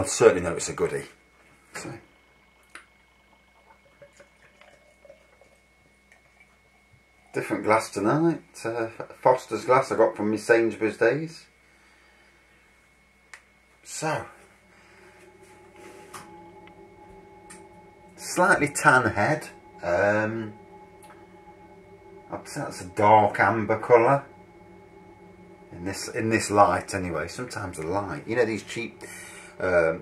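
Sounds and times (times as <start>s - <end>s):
faint steady hum: 0.0s - 30.0s
liquid gurgles and drips: 2.6s - 7.4s
beer pouring into glass: 3.3s - 6.7s.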